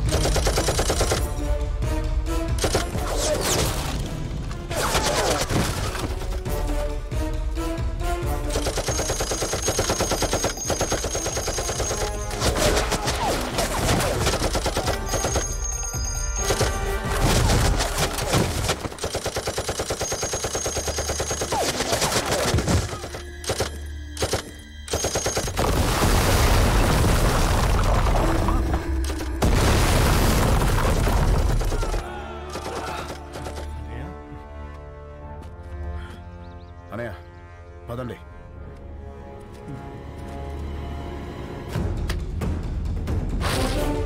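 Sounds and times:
rapid automatic gunfire: 0.0 - 1.2, 8.5 - 15.6, 17.4 - 26.0
dramatic background music: 0.0 - 44.0.

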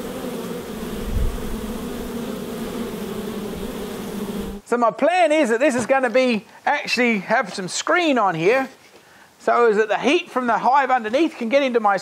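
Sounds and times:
honey bees buzzing: 0.0 - 4.6.

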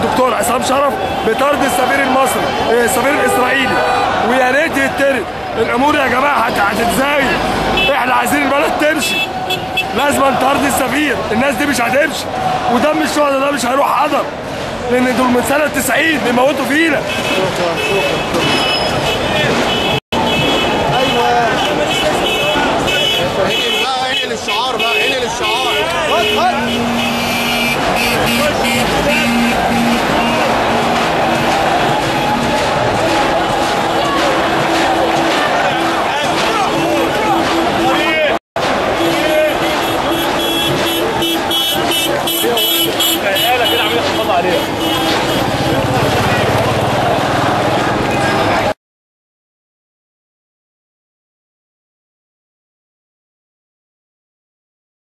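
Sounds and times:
crowd voices: 0.0 - 48.8
street traffic: 0.0 - 48.8.

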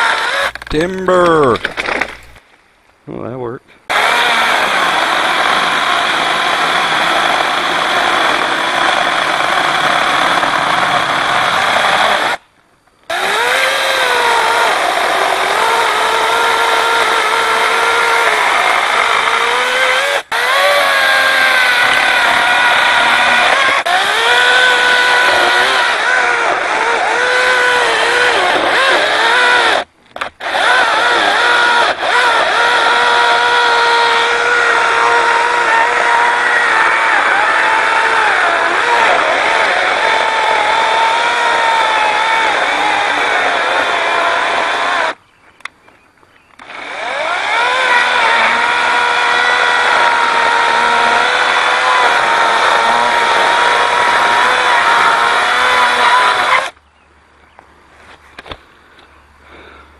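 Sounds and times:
chainsaw whine cutting wood: 0.0 - 2.4, 3.9 - 12.4, 13.1 - 45.2, 46.6 - 56.8.

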